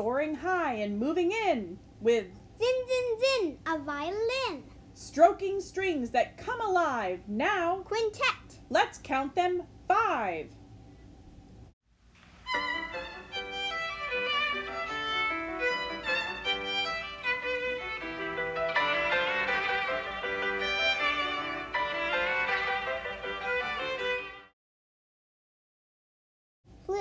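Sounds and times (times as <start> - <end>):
violin playing classical melody: 12.4 - 24.5.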